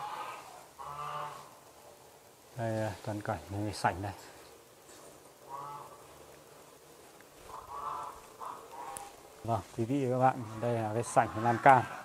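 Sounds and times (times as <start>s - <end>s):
animal calling: 7.4s - 9.3s.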